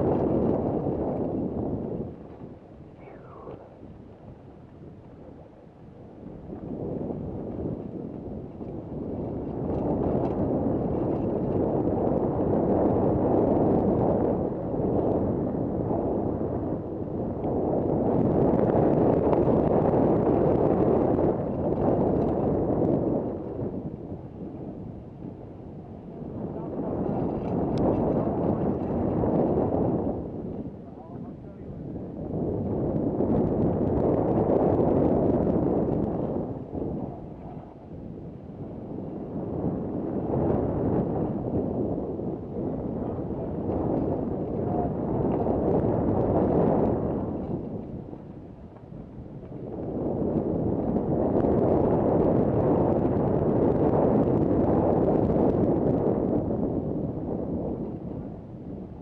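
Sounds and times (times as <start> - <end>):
wind rumbling over microphone: 0.0 - 59.0.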